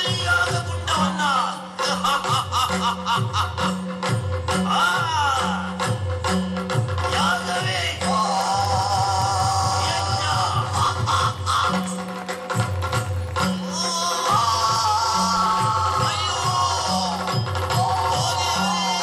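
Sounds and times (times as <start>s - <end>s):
jingling clashing percussion: 0.0s - 19.0s
repeating drum pattern: 0.0s - 19.0s
person singing: 7.0s - 12.2s, 13.6s - 19.0s.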